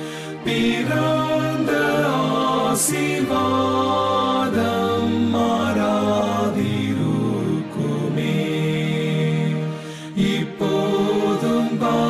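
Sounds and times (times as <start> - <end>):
person singing devotional song: 0.0 - 12.0
soft musical backing: 0.0 - 12.0.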